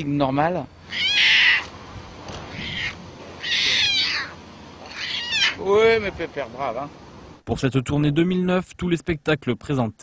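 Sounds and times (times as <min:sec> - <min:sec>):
tiger cubs mewing: 0:00.7 - 0:06.1.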